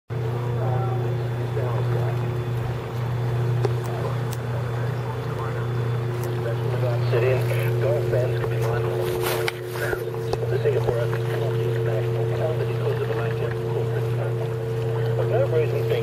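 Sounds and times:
boat engine droning: 0:00.1 - 0:16.0
faint radio speech: 0:00.3 - 0:02.7, 0:03.5 - 0:16.0.

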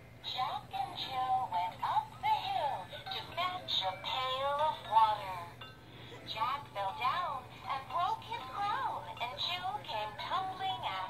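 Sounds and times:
toy electronic singing voice: 0:00.3 - 0:05.5, 0:06.3 - 0:11.0.

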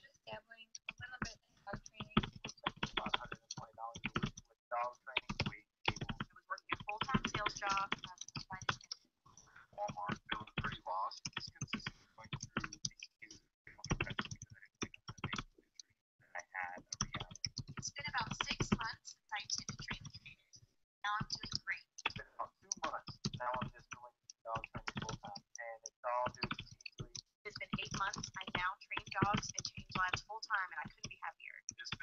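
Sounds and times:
laptop keyboard typing: 0:00.0 - 0:09.0, 0:09.8 - 0:15.7, 0:16.8 - 0:20.3, 0:21.1 - 0:32.0
person talking: 0:00.0 - 0:32.0
faint low speech: 0:09.5 - 0:17.3.

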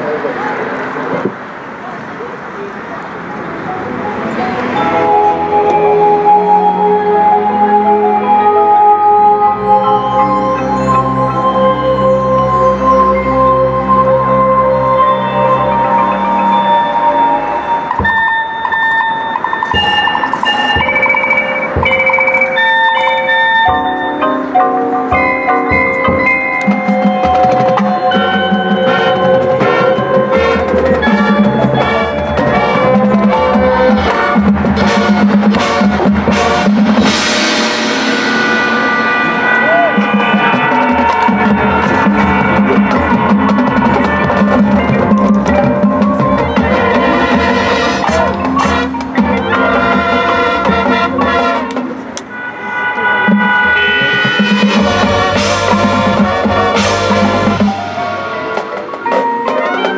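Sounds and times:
marching band playing: 0:03.4 - 0:59.9
drum strikes: 0:17.8 - 0:24.2, 0:25.1 - 0:52.3, 0:53.3 - 0:59.9
cymbal crash: 0:35.6 - 0:43.9.

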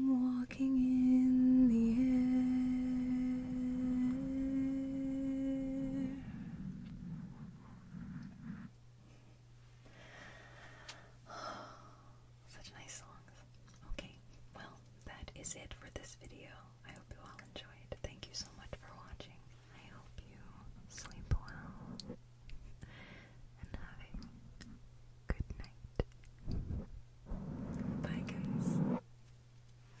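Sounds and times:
woman whispering: 0:06.0 - 0:08.7, 0:12.5 - 0:22.2, 0:23.6 - 0:26.9, 0:27.6 - 0:29.0.

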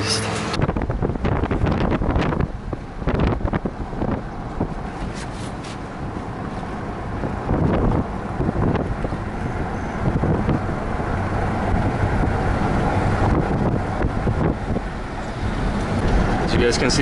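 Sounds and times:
car road and engine noise: 0:00.0 - 0:17.0
wind buffeting microphone: 0:00.5 - 0:17.0.

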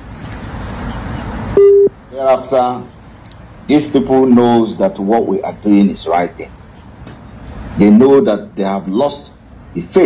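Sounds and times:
outdoor noise: 0:00.0 - 0:10.0
short loud beep: 0:01.6 - 0:01.9.

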